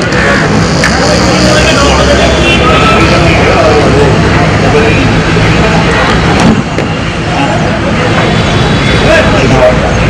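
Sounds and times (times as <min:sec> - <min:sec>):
loud outdoor din: 0:00.0 - 0:10.0
people's voices: 0:00.0 - 0:10.0.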